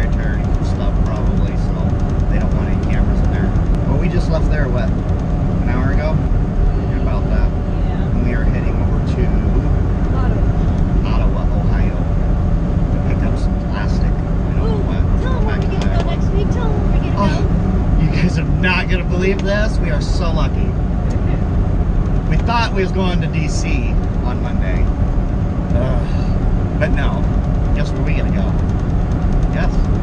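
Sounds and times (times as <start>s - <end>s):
road noise: 0.0s - 30.0s
truck engine drone: 0.0s - 30.0s.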